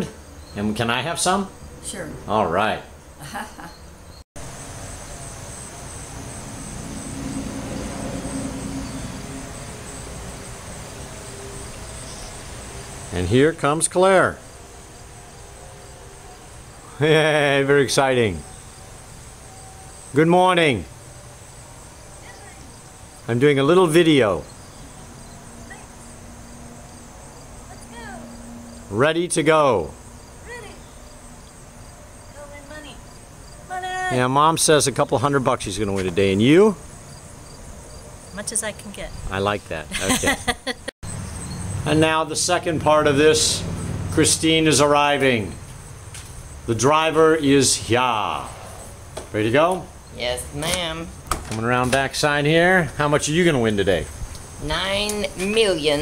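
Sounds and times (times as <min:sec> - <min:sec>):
insects chirring: 0:00.0 - 0:56.0
low rumble: 0:04.6 - 0:10.8, 0:48.2 - 0:49.2.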